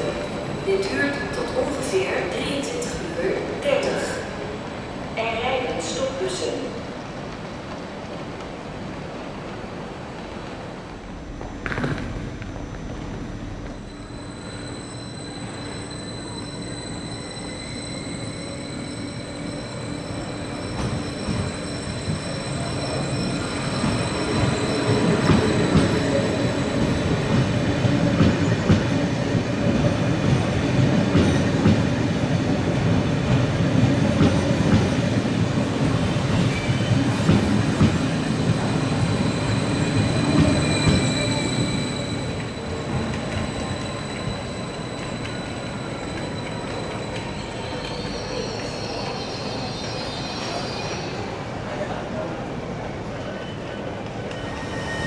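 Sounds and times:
train wheels rumbling: 0.0s - 50.6s.

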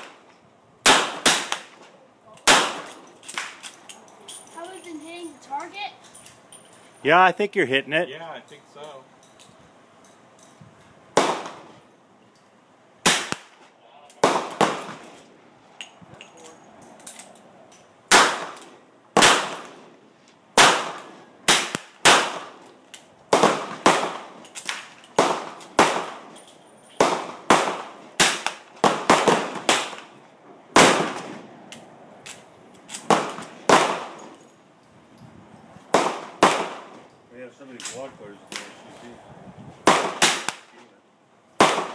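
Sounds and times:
gunshots: 0.8s - 1.8s, 2.5s - 3.6s, 11.2s - 11.7s, 13.0s - 15.2s, 18.1s - 18.6s, 19.2s - 19.8s, 20.6s - 22.6s, 23.3s - 26.3s, 27.0s - 30.1s, 30.8s - 31.4s, 33.0s - 34.2s, 35.9s - 37.0s, 39.8s - 40.8s, 41.6s - 41.9s.

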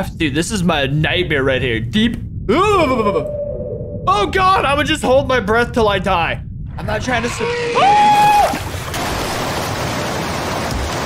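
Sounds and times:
churning water and spray: 8.1s - 11.0s.

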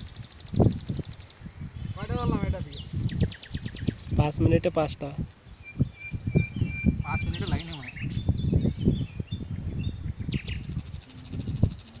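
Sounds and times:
birds chirping and whistling: 0.0s - 4.3s, 5.1s - 12.0s.

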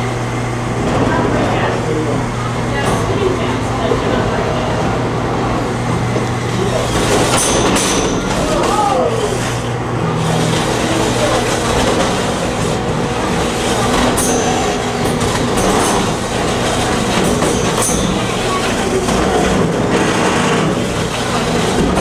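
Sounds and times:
sharp metal impacts: 7.0s - 8.8s, 13.9s - 20.6s.

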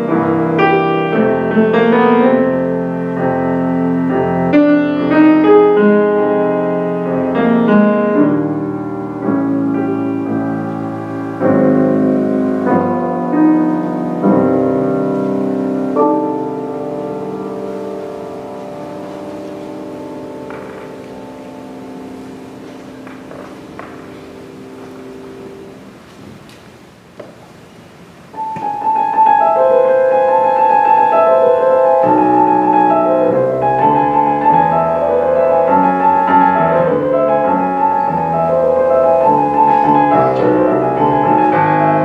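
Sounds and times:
grand piano chords: 0.0s - 42.0s.

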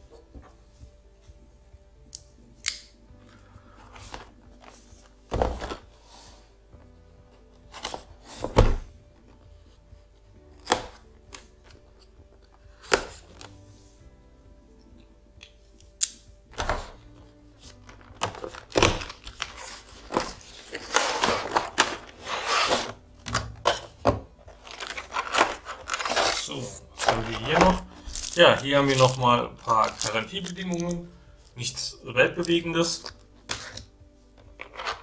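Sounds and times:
cardboard and plastic crinkling: 17.6s - 23.0s, 23.6s - 31.1s, 34.5s - 35.0s
knife slitting cardboard seal: 24.7s - 27.4s.

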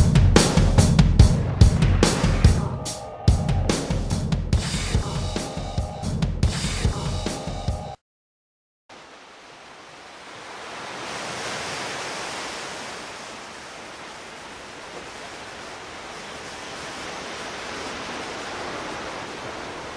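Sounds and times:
steady rushing noise: 0.4s - 5.7s.

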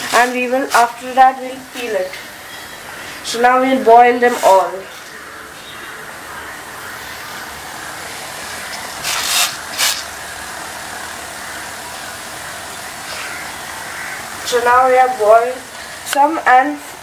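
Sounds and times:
gas burner hissing: 0.0s - 17.0s
water near boiling: 0.0s - 17.0s.

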